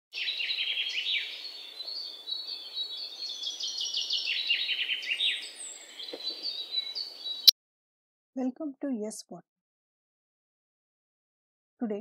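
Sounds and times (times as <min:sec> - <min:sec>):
small birds chirping: 0:00.1 - 0:07.5.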